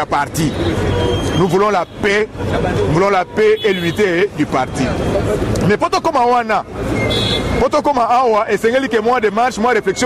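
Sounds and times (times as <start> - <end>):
man speaking: 0.0 - 0.8, 1.4 - 6.7, 7.5 - 10.0
passing vehicle traffic noise: 0.0 - 10.0.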